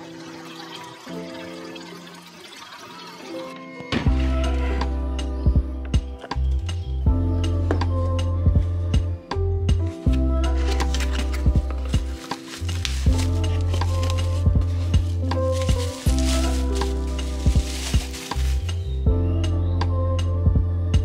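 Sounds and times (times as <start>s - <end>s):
lofi hip hop music: 0.0s - 21.0s
bubble wrap crinkling: 10.1s - 19.0s.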